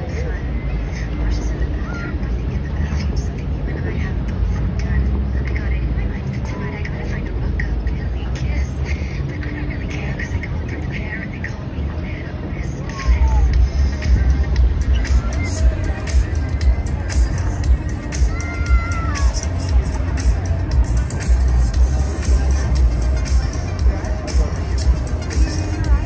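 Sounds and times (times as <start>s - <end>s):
crowd talking: 0.0s - 26.0s
low rumble of city noise: 0.0s - 26.0s.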